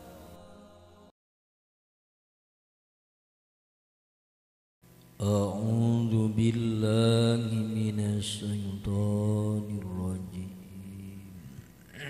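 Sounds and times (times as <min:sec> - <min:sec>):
man chanting: 0:05.2 - 0:12.0.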